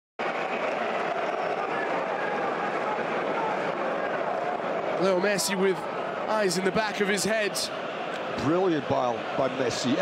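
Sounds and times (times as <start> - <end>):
stadium crowd noise: 0.2 - 10.0.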